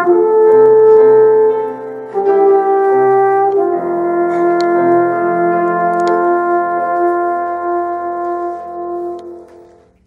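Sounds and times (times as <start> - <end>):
alphorn long note: 0.0 - 9.9.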